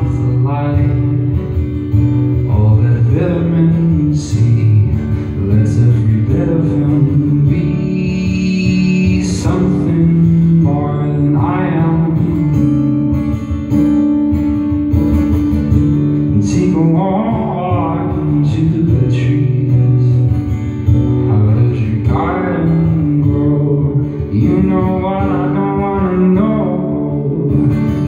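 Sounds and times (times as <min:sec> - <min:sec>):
man singing long notes: 0:00.0 - 0:01.2, 0:02.5 - 0:12.6, 0:21.3 - 0:28.0
strummed acoustic guitar: 0:00.0 - 0:28.0.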